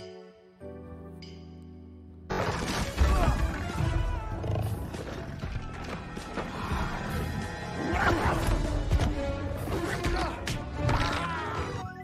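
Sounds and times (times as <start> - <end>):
dramatic trailer music: 2.3 - 12.0.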